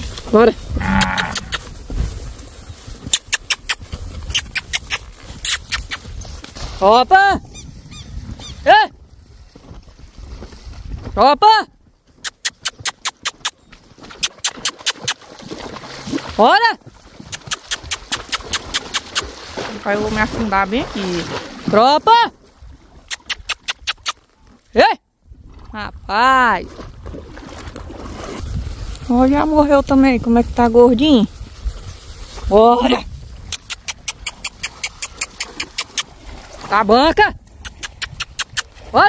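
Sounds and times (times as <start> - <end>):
horse splashing through water: 0.0 - 11.2, 11.8 - 39.0
tongue clicks: 0.9 - 1.7, 3.1 - 6.1, 12.2 - 13.6, 17.3 - 19.3, 23.1 - 24.2, 33.5 - 36.1, 37.5 - 38.9.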